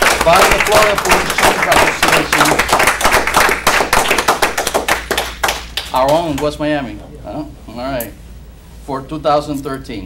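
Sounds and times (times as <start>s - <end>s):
people applauding: 0.0s - 6.5s.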